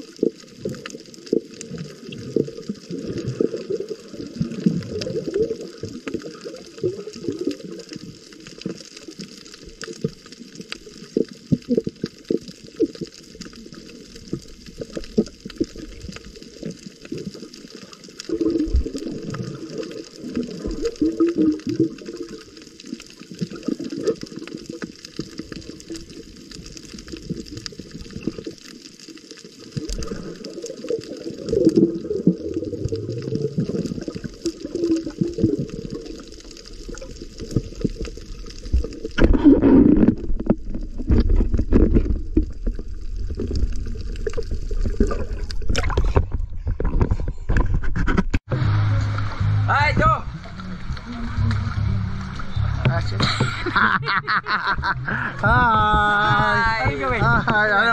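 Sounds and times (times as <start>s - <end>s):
crackle of small clicks: 0.0s - 48.4s
muffled underwater water movement: 0.0s - 57.9s.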